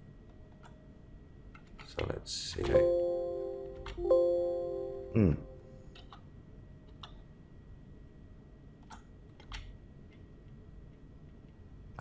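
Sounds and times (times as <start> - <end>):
computer mouse clicks: 6.9 - 7.2, 8.8 - 9.8.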